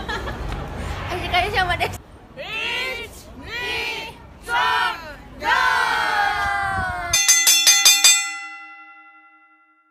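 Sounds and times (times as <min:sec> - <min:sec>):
bright bell-like chime: 0:07.2 - 0:09.9.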